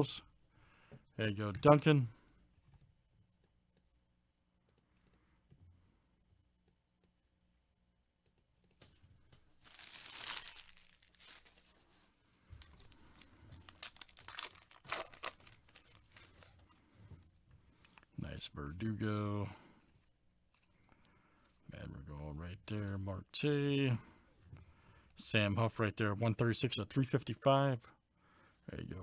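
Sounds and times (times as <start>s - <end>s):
wrapper tearing open: 9.6s - 11.8s, 12.6s - 16.5s
wrapper crinkling: 9.6s - 16.6s.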